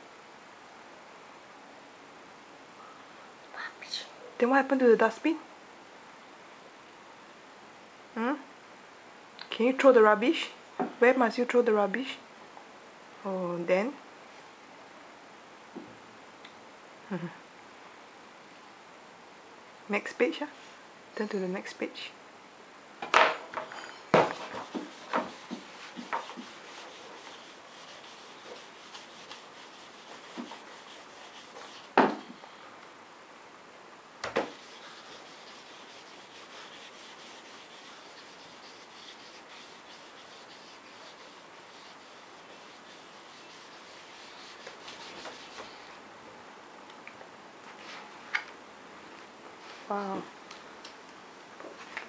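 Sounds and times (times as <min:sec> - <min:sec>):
eraser scraping glossy page: 0:23.8 - 0:32.0, 0:34.4 - 0:45.9.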